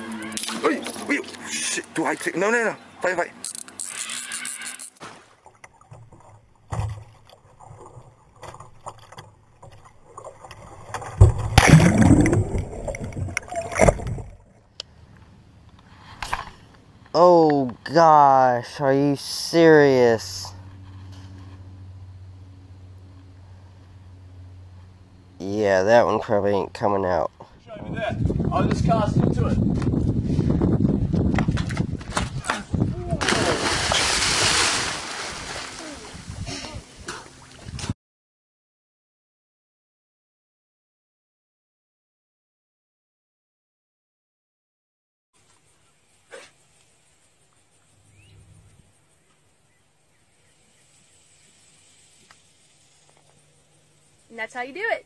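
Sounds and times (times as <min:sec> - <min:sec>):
water crashing over kayak: 0:10.2 - 0:14.4, 0:33.1 - 0:36.4
low rumbling noise: 0:11.1 - 0:15.8.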